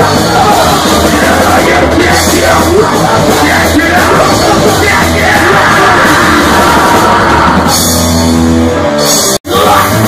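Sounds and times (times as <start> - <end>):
shouted vocals: 0.0 - 7.8, 9.5 - 10.0
bass guitar: 0.0 - 10.0
distorted electric guitar: 0.0 - 10.0
drums: 0.0 - 10.0.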